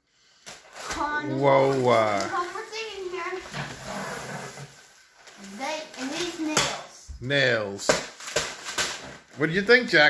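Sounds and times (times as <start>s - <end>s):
plastic and paper packaging rustling: 0.4s - 10.0s
child's voice: 0.8s - 3.7s, 5.4s - 7.2s.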